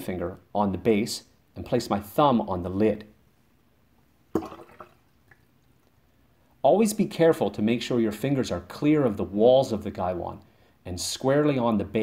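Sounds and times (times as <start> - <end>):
water pouring into glass pitcher: 4.4 - 5.5
faint water drip: 4.4 - 6.0.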